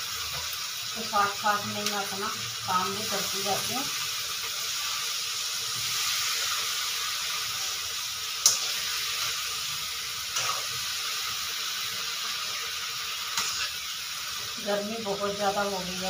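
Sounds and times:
beans sizzling in a pan: 0:00.0 - 0:16.0.

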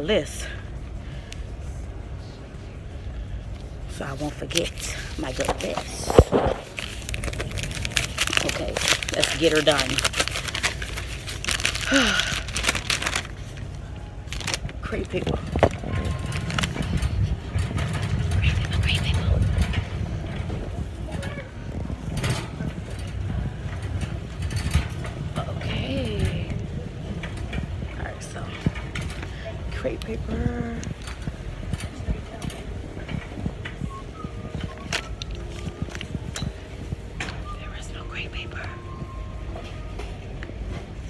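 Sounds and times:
low rumble: 0:00.0 - 0:41.0.

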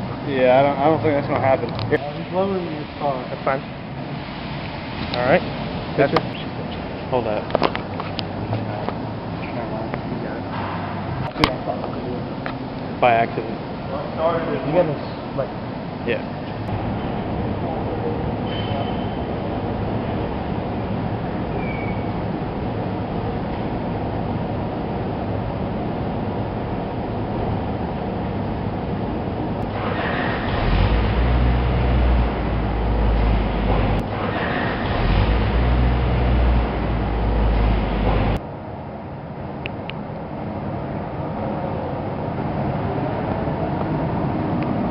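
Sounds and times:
car engine rumbling: 0:00.0 - 0:38.4
heavy low rumble: 0:22.1 - 0:38.4.

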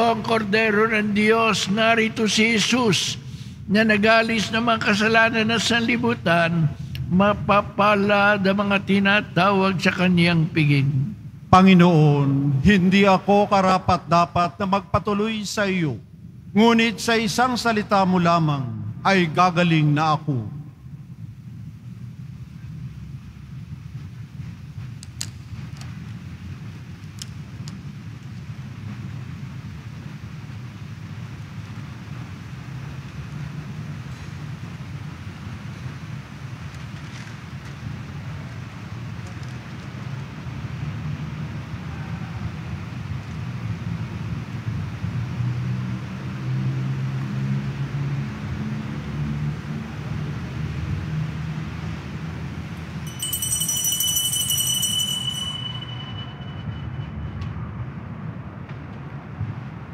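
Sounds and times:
church interior room rumble: 0:00.0 - 0:59.9
bright high ringing tone: 0:53.0 - 0:57.9.

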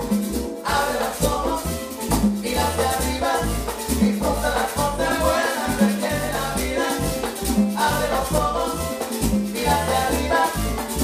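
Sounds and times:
bass guitar: 0:00.0 - 0:11.0
congas: 0:00.0 - 0:11.0
percussion groove: 0:00.0 - 0:11.0
saxophone: 0:03.3 - 0:11.0.

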